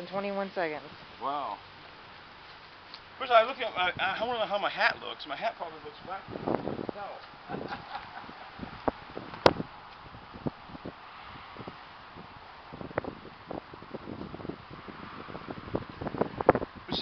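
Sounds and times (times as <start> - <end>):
wind on microphone: 3.7 - 17.0.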